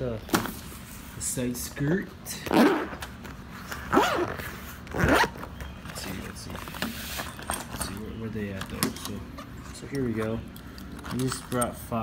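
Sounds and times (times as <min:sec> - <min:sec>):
zipper pulled open: 0:02.5 - 0:03.1, 0:03.7 - 0:05.4.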